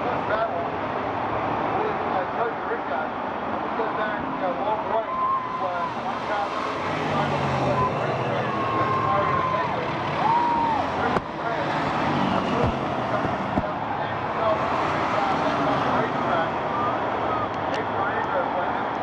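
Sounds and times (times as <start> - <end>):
stock car engines racing: 0.0 - 19.0
voices in grandstand: 1.6 - 19.0.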